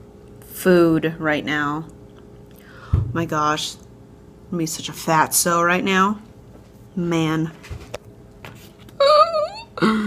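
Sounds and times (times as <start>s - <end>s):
woman speaking: 0.5s - 1.9s, 3.0s - 3.9s, 4.5s - 6.3s, 7.0s - 7.6s
woman's playful moan: 9.0s - 10.0s.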